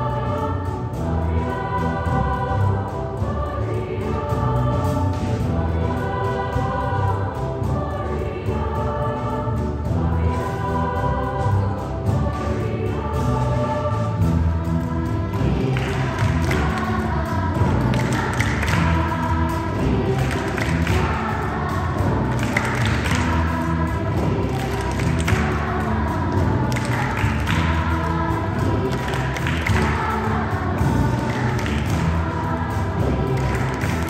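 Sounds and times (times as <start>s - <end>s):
children's choir singing: 0.0s - 34.0s.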